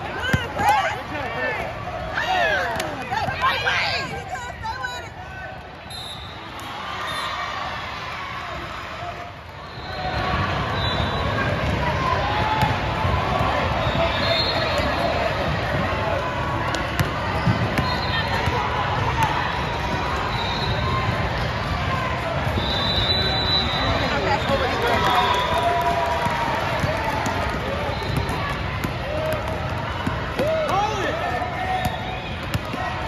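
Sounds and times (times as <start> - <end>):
crowd chatter in a hall: 0.0 - 33.0.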